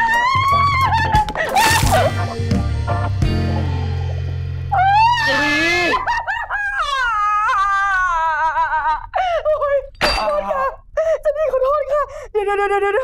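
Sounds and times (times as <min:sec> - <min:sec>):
woman shrieking: 0:00.0 - 0:02.1, 0:04.7 - 0:09.0
woman wailing and whimpering: 0:04.8 - 0:13.0.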